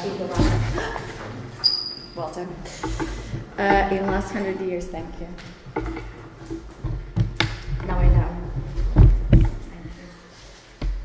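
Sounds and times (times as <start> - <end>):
short knocks: 2.8 - 10.0
woman speaking: 3.5 - 5.4, 7.8 - 8.5
low rumble: 6.8 - 10.0.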